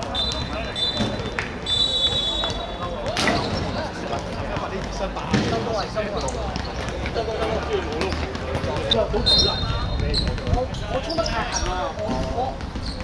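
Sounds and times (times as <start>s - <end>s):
players calling out: 0.0s - 13.0s.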